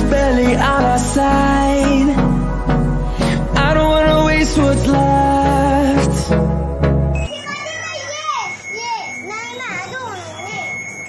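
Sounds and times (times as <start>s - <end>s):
high electronic tone: 0.0s - 11.0s
young children chattering: 7.3s - 11.0s.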